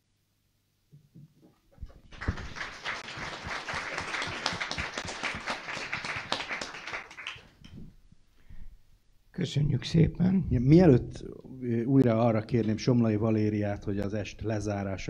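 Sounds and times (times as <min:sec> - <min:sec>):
audience applauding: 0:02.0 - 0:07.6.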